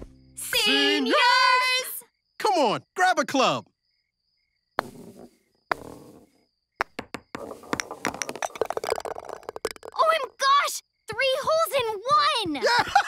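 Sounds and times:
golf ball rolling: 4.8s - 10.4s
putter striking golf ball: 6.8s - 10.1s.

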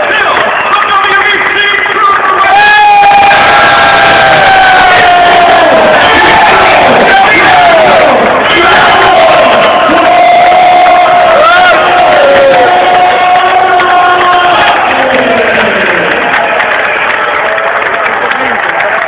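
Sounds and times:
crowd cheering and shouting: 0.0s - 19.0s.

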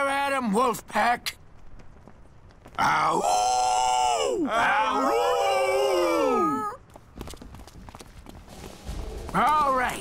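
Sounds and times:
cartoon running footsteps: 1.2s - 3.2s, 6.8s - 10.0s.

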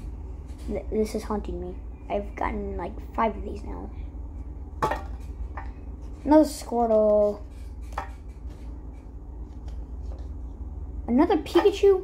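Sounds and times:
steady low hum: 0.0s - 12.0s
cards being handled: 6.9s - 10.6s.

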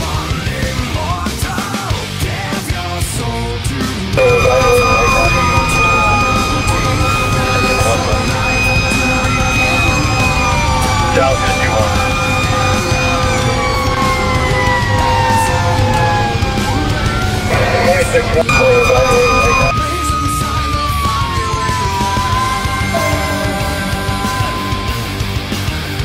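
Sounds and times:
heavy rock song: 0.0s - 26.0s
fire engine siren: 4.2s - 26.0s.

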